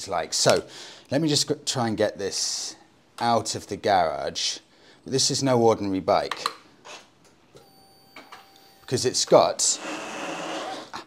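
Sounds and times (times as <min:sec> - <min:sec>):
faint electrical whine: 0:00.0 - 0:11.0.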